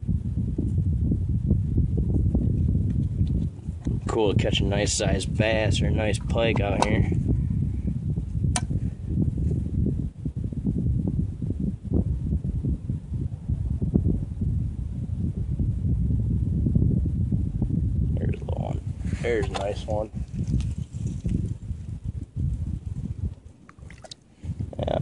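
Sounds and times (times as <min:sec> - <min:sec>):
wind buffeting microphone: 0:00.0 - 0:25.0
sharp click: 0:08.5 - 0:08.8.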